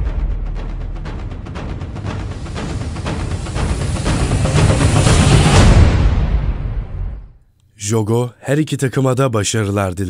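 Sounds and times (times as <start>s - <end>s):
deep rumble: 0.0s - 7.4s
rushing noise: 1.6s - 7.4s.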